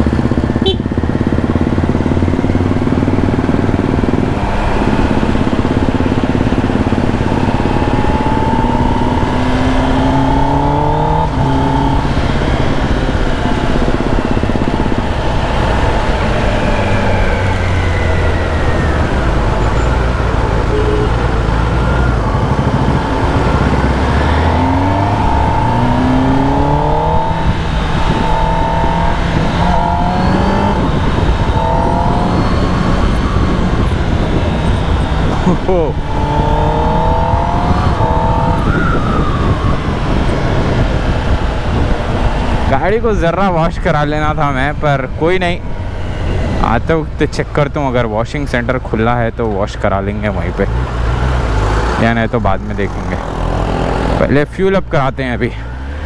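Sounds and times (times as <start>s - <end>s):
motorcycle engine accelerating: 0.0s - 54.4s.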